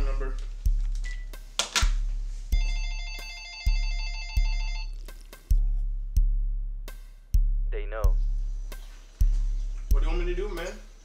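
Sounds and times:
music beat with bass drum: 0.0s - 11.0s
telephone electronic trill ringing: 2.6s - 4.9s.

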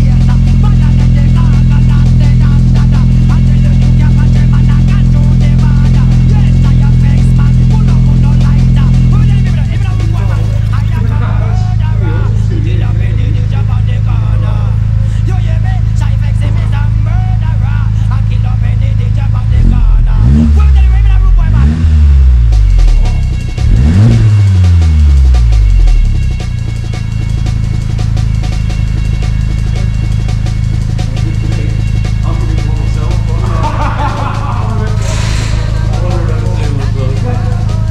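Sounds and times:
car engine idling: 0.0s - 37.9s
car engine revving: 0.0s - 37.9s.

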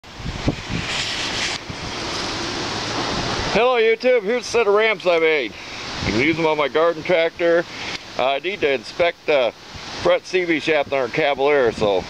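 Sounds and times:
wind buffeting microphone: 0.0s - 3.6s, 5.9s - 6.4s.

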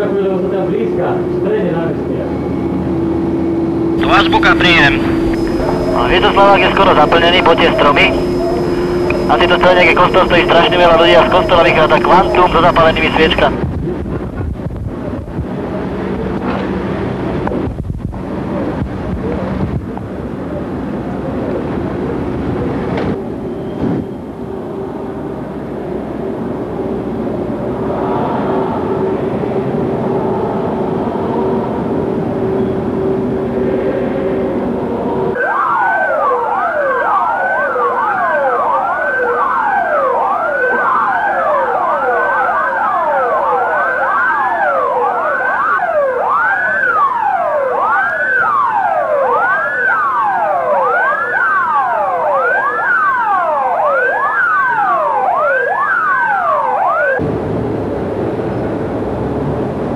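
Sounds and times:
vehicle sirens wailing: 0.0s - 59.9s.

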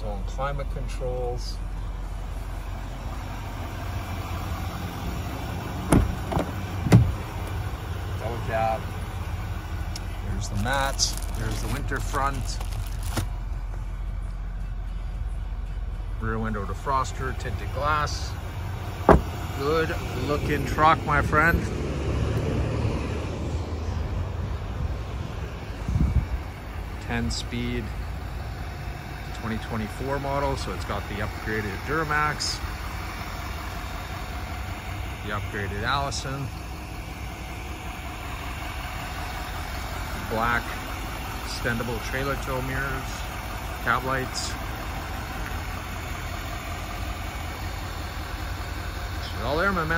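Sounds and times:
diesel engine idling: 0.0s - 49.9s
steady low rumble: 0.0s - 49.9s
truck doors clunking shut: 5.7s - 7.6s, 18.9s - 19.6s.

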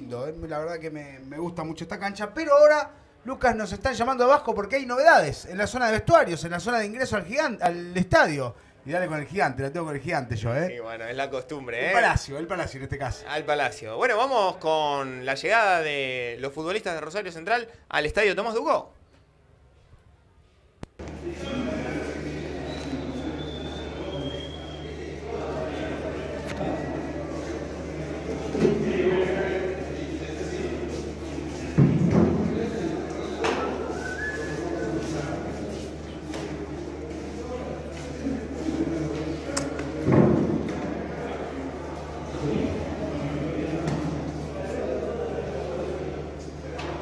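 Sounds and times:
low electrical hum: 0.0s - 47.0s
background murmur: 21.0s - 47.0s
indistinct background voices: 21.0s - 47.0s.

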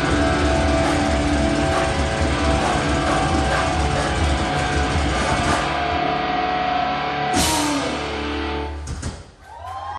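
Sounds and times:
death metal band playing: 0.0s - 9.0s.

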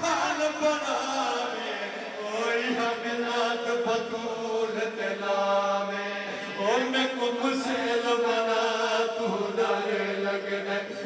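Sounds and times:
man chanting mourning lament: 0.0s - 11.0s.

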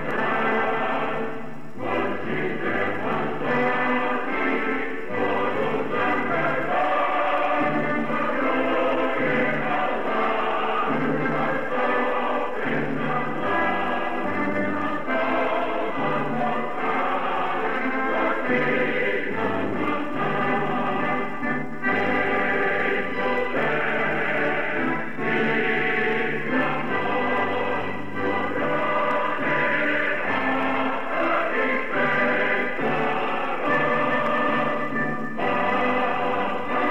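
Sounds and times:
choir singing with instruments: 0.0s - 36.9s.

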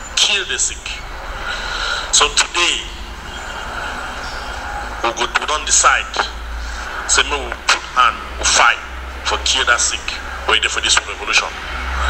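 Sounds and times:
low rumble: 0.7s - 10.9s.

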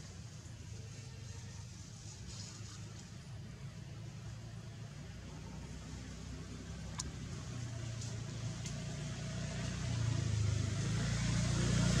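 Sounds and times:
low engine hum: 0.0s - 12.0s.

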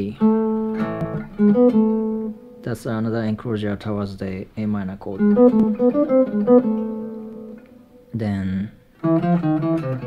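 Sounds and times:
clean electric guitar notes: 5.2s - 8.1s.

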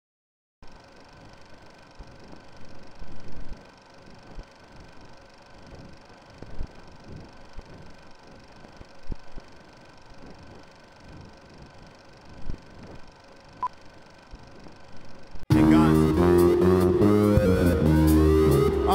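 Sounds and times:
faint hum: 0.6s - 17.1s.

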